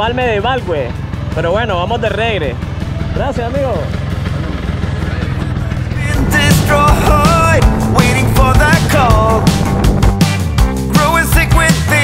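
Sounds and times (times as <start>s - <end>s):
motorcycle engine at low revs: 1.0s - 8.5s
music with melody and beat: 5.9s - 12.0s.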